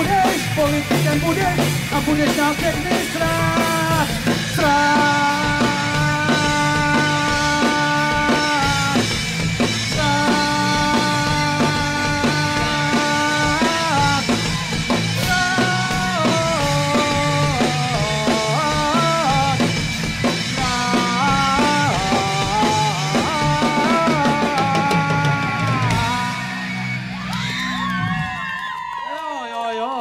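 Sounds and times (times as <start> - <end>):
live rock band playing: 0.0 - 28.4.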